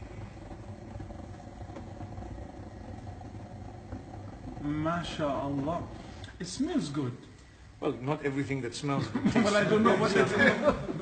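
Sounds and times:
gas stove burner rumble: 0:00.0 - 0:11.0.

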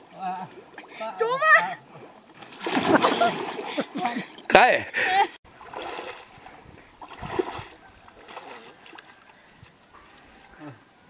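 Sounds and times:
large splash into muddy water: 0:02.6 - 0:03.7.

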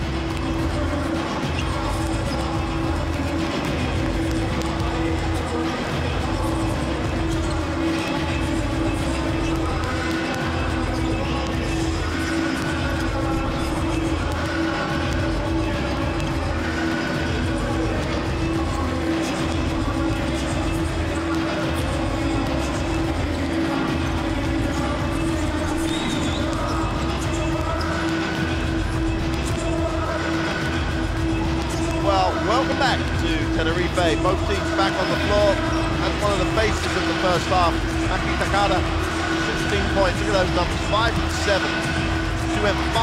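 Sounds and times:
arena music with steady beat: 0:00.0 - 0:43.0.

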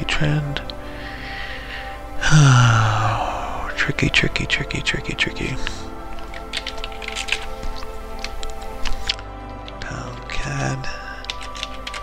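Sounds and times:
background music: 0:00.0 - 0:12.0
keyboard typing: 0:06.1 - 0:10.3, 0:11.2 - 0:12.0.

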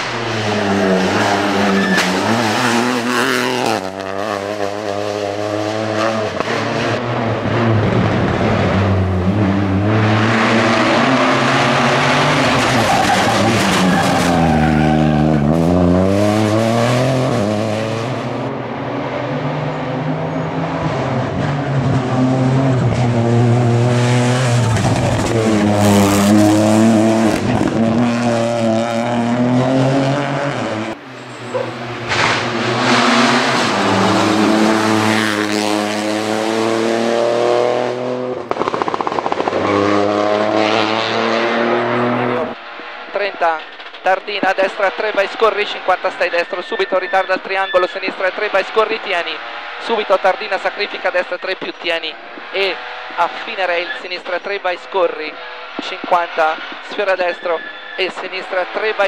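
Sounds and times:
rally car engine revving: 0:00.0 - 0:43.0, 0:48.1 - 0:54.2.

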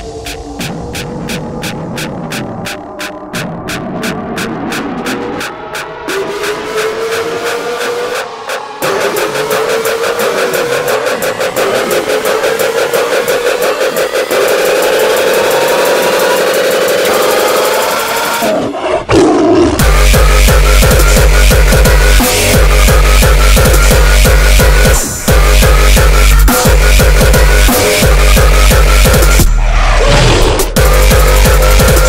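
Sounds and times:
rising synth tone: 0:00.0 - 0:18.4
accelerating drum roll: 0:00.0 - 0:18.5
heavy kick drums: 0:19.8 - 0:29.5, 0:30.6 - 0:32.0.

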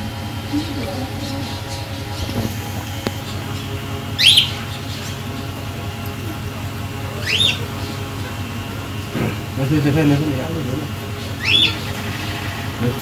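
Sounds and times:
steady low hum: 0:00.0 - 0:13.0
bird chirping: 0:00.5 - 0:05.6, 0:07.1 - 0:08.4, 0:11.0 - 0:12.4.

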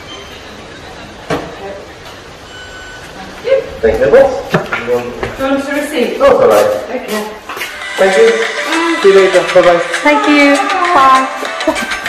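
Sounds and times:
faint electronic beep: 0:00.0 - 0:01.1, 0:02.4 - 0:03.3.

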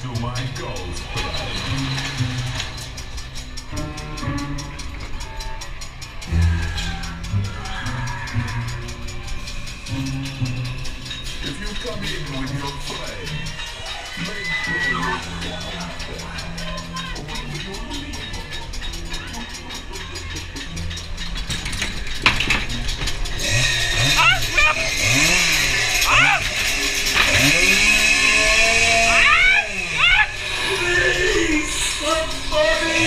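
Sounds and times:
ride hum: 0:00.0 - 0:33.0
spooky voice effects with howls: 0:12.6 - 0:17.8, 0:23.9 - 0:26.5, 0:27.4 - 0:33.0.

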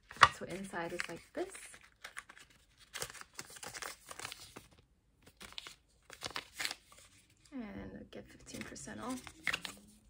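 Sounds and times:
paper packaging crinkling: 0:00.0 - 0:07.2.

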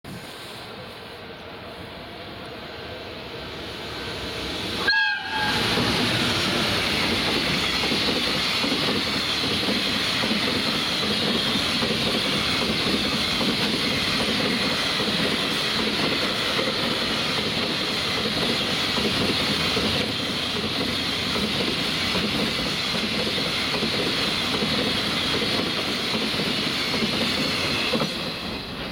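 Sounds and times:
freight train rumble and wheel clatter: 0:00.1 - 0:28.9
locomotive horn blast: 0:04.8 - 0:06.1.

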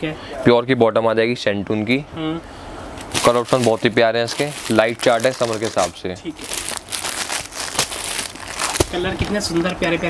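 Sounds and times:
plastic packets crinkling: 0:03.1 - 0:09.4.

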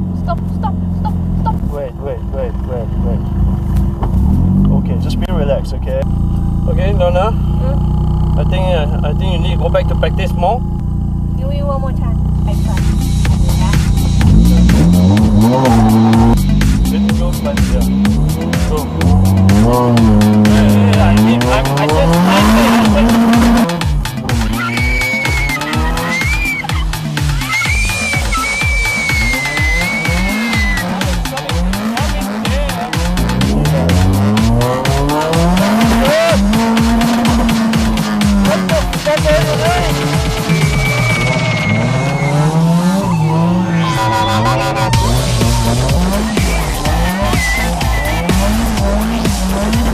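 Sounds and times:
car engine revving: 0:00.0 - 0:49.9
tyres squealing: 0:12.6 - 0:49.9.

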